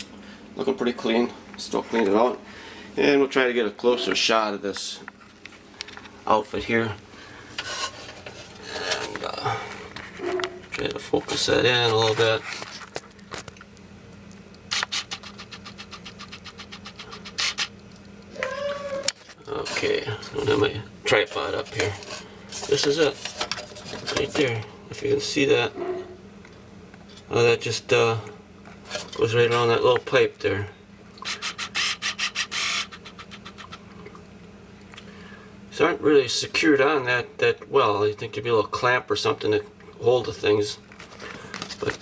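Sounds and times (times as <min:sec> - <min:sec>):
low steady hum: 0:00.0 - 0:42.0
hand rubbing and scraping: 0:07.5 - 0:12.9, 0:14.7 - 0:17.8.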